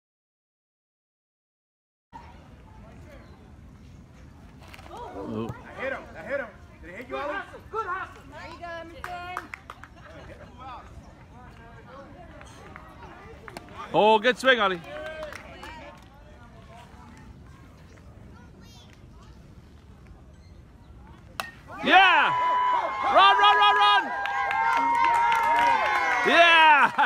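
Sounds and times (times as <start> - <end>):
baseball bat hitting ball: 21.4 - 21.9.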